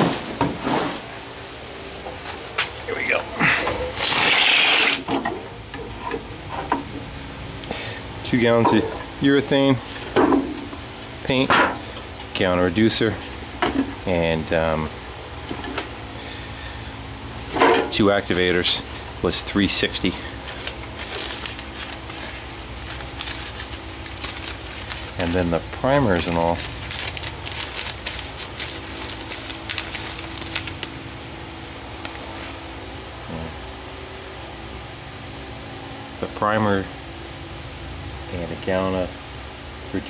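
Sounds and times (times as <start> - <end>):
steady hum: 0.0 - 40.0
crinkly rustling and clicking: 20.4 - 25.3, 26.0 - 31.0.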